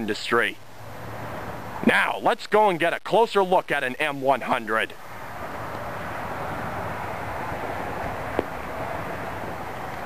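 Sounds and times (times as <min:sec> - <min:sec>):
outdoor rushing noise: 0:00.0 - 0:02.8, 0:04.0 - 0:10.0.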